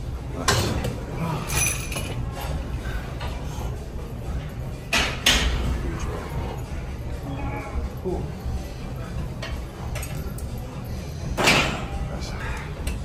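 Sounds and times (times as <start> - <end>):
gym background noise: 0.0 - 13.0.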